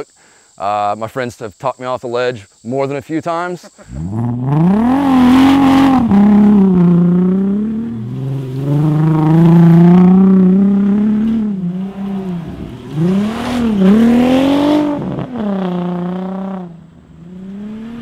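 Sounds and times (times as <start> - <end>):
car engine revving hard: 3.9 - 18.0.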